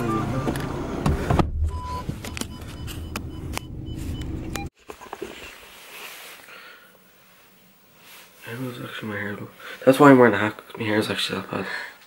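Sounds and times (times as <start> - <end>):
engine and road rumble: 0.0 - 4.8.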